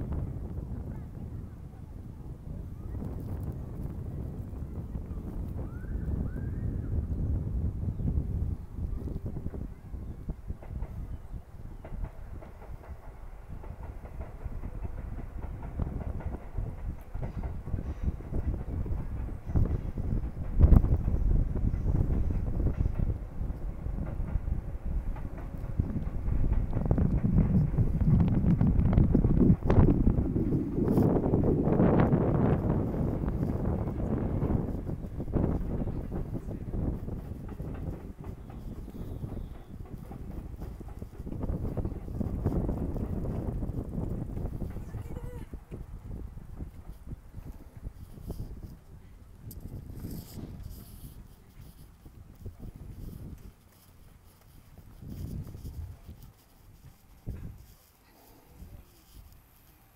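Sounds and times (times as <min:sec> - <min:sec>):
wind buffeting microphone: 0:00.0 - 0:59.9.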